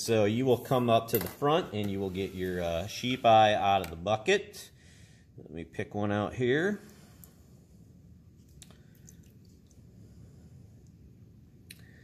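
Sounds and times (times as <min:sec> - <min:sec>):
faint wet handling sounds: 0:06.8 - 0:11.8.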